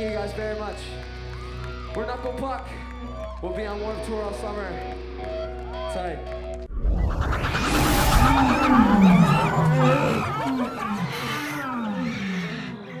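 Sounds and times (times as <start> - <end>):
sudden rush of noise: 6.7 - 10.6
wild animal calls: 7.8 - 13.0.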